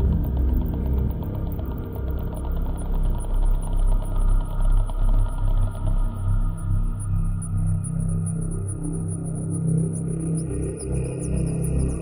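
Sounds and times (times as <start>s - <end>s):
gritty engine-like low rumble: 0.0s - 10.2s.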